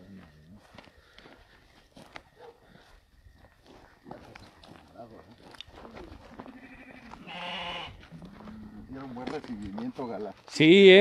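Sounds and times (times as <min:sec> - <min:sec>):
footsteps on grass: 0:00.0 - 0:11.0
sheep bleating: 0:06.4 - 0:08.8.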